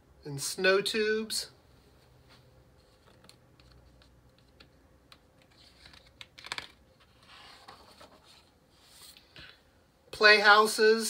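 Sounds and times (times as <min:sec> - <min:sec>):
paper page rustling: 0:02.8 - 0:04.7, 0:05.4 - 0:09.4.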